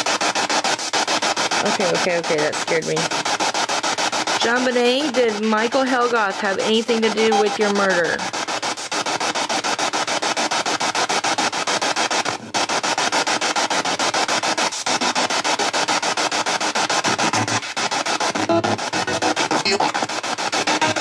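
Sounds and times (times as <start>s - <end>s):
pulsing radio static: 0.0s - 21.0s
radio voices: 5.6s - 8.2s.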